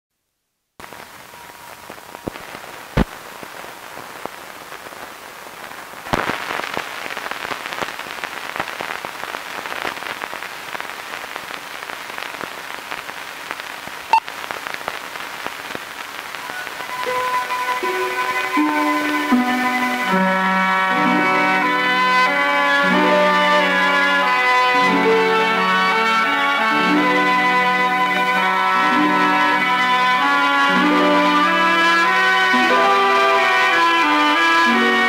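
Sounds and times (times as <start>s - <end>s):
film soundtrack hiss and crackle: 0.1s - 35.0s.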